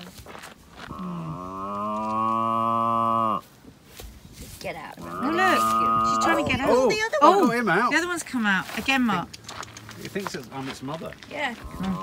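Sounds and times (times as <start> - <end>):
calf mooing: 5.0 - 6.9.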